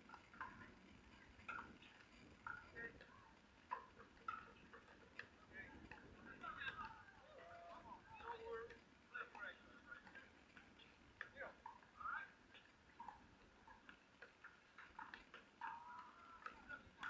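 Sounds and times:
faint distant voices: 0.0s - 17.0s
paddles hitting ball clicks: 0.0s - 17.0s.

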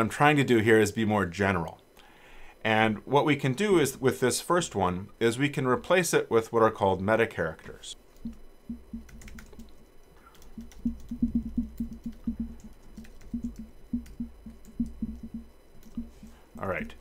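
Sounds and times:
typing on computer keyboard: 8.2s - 9.7s, 10.3s - 16.1s.

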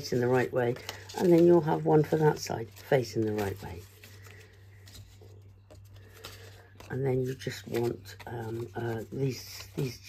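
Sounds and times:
low electrical hum: 0.0s - 10.0s
paper card rustling: 0.0s - 10.0s.

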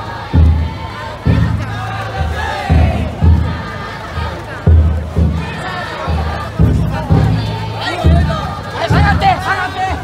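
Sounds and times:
crowd chanting and shouting: 0.0s - 10.0s
taiko drum beats: 0.0s - 10.0s.

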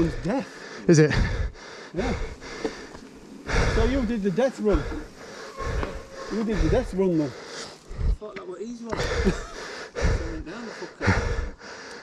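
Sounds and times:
breath noise: 0.0s - 8.3s, 8.9s - 12.0s
indistinct men's voices: 0.0s - 11.7s.

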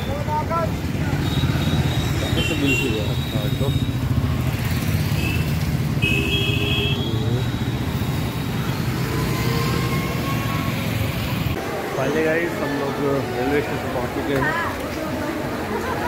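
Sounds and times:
motorcycles and cars passing: 0.0s - 16.0s.

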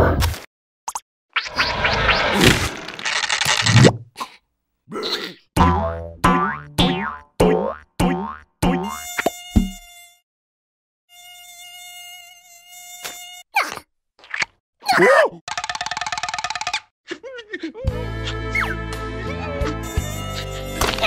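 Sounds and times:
cartoon mosquito buzzing: 8.7s - 10.2s, 11.1s - 13.7s, 19.8s - 21.0s.

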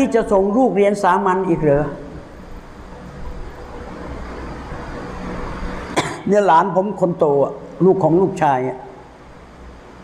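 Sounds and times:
road traffic rumble: 1.6s - 7.9s.

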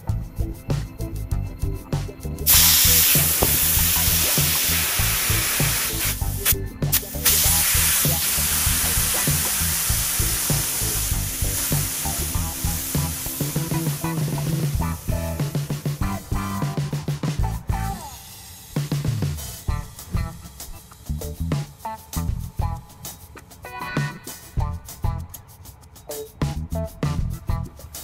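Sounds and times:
compressed air hissing: 2.5s - 16.0s.

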